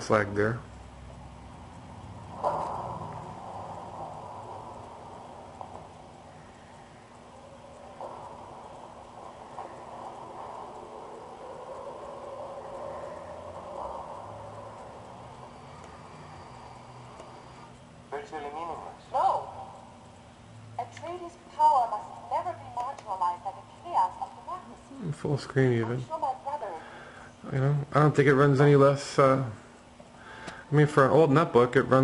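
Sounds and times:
steady mid-pitched sound: 0.0 - 26.8.

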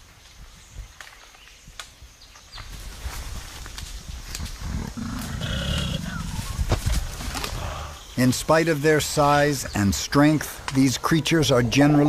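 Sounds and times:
gorilla low rumbling vocalization: 4.4 - 6.8, 7.4 - 8.0.

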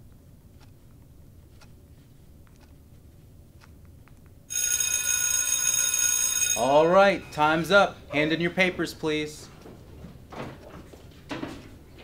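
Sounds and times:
electric bell ringing: 4.5 - 7.9.

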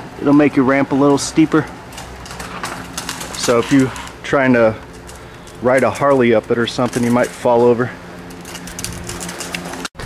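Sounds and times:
steady low hum: 0.0 - 10.0
rustling and clicking handling noise: 0.2 - 10.0.

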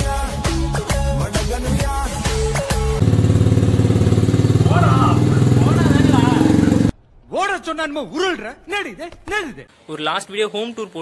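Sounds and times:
motorcycle engine running: 3.0 - 7.0
voices: 4.6 - 9.4.

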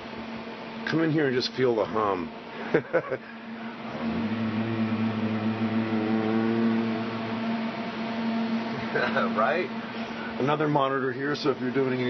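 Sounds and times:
computer equipment hum and fan hiss: 0.0 - 12.0.

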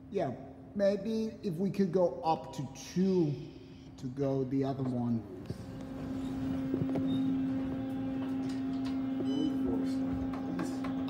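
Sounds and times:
elevator running low hum: 2.6 - 11.0.

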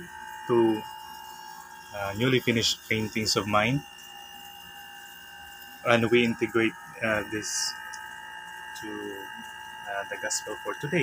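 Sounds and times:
thin high tones: 0.0 - 8.2
faint background hum: 0.0 - 11.0
man speaking: 0.5 - 0.8, 2.0 - 3.8, 5.9 - 7.8, 8.8 - 9.3, 9.9 - 11.0.

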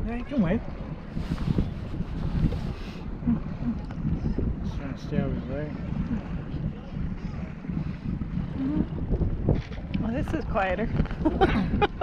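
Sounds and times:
choppy water washing: 0.0 - 12.0
wind buffeting microphone: 0.0 - 12.0.

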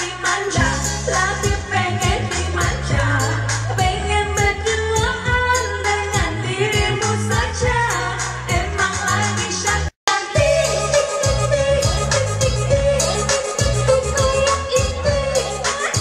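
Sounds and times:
pop backing music: 0.0 - 16.0
women singing into microphones: 0.0 - 16.0.

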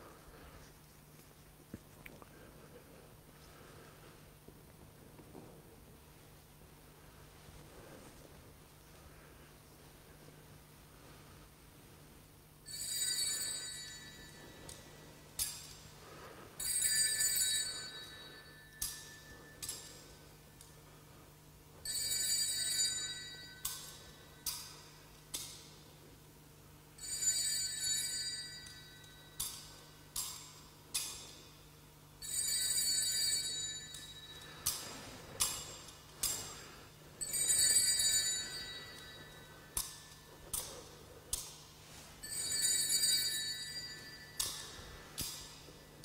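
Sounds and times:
high bells ringing: 12.6 - 20.5, 21.7 - 25.0, 27.0 - 30.6, 32.2 - 40.8, 41.9 - 46.0.

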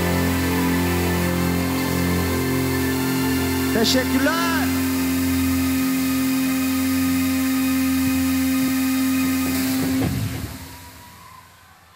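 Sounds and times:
rock band sustained chord: 0.0 - 6.3
low hum: 0.0 - 11.9.

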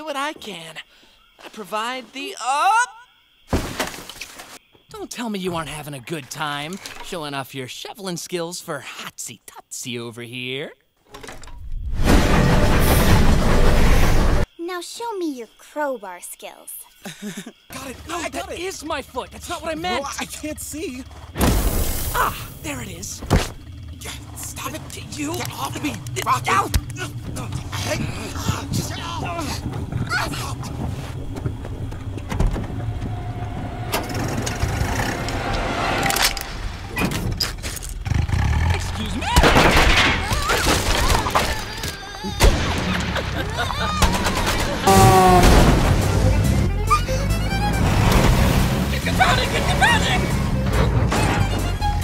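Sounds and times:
car engine running: 18.3 - 30.0, 45.8 - 52.0
train rushing past: 32.7 - 36.9.

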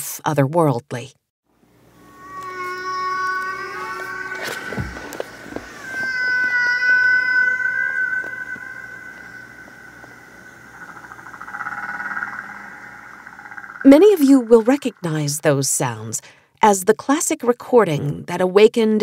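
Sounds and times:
humpback whale song underwater: 2.0 - 16.0.

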